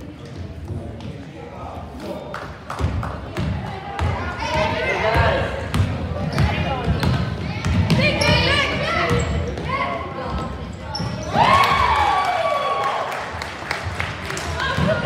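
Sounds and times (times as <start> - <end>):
voices of players and spectators: 0.0 - 15.0
basketball bouncing on hardwood floor: 5.1 - 8.5.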